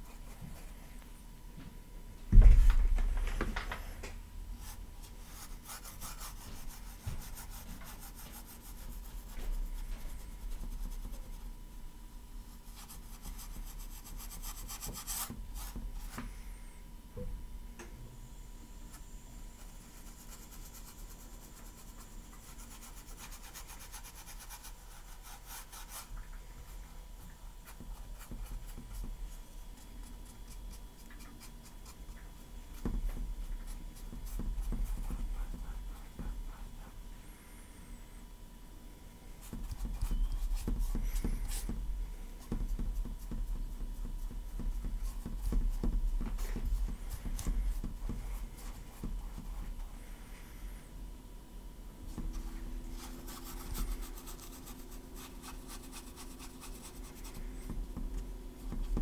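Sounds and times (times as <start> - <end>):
paintbrush scrubbing on canvas: 4.6 - 11.5, 19.6 - 37.6.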